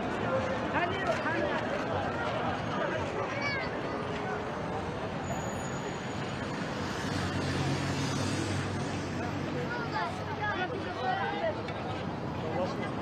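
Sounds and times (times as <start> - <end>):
crowd walking and talking: 0.0 - 13.0.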